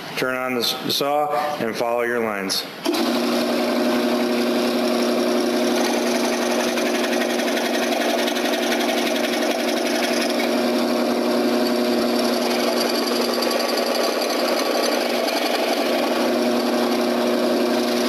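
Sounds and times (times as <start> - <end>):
scroll saw cutting wood: 2.9 - 18.0.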